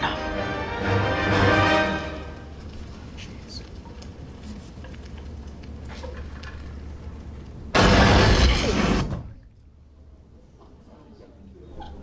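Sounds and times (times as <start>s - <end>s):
sudden loud blast: 7.7s - 9.4s.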